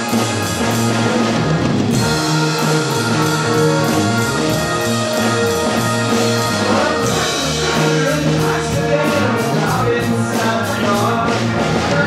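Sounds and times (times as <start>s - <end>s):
drum kit: 0.0s - 12.0s
rock guitar: 0.0s - 12.0s.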